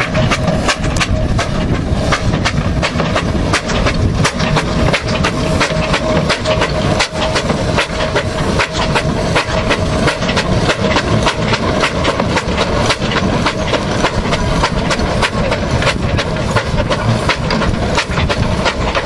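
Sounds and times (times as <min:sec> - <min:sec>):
steam engine exhaust chuffs: 0:00.0 - 0:19.0
steam hissing: 0:00.0 - 0:19.0.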